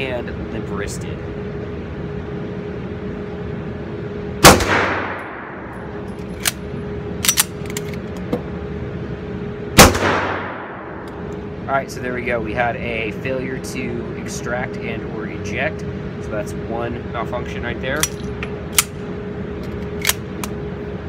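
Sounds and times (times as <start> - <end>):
pistol shots echoing: 4.4 - 5.6, 9.8 - 11.0
metallic clicks of pistol slide: 6.2 - 8.3.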